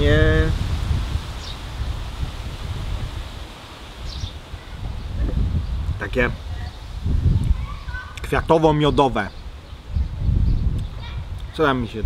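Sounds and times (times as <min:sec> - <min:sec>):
wind rumbling on microphone: 0:00.0 - 0:12.0
high bird chirp: 0:04.0 - 0:05.8.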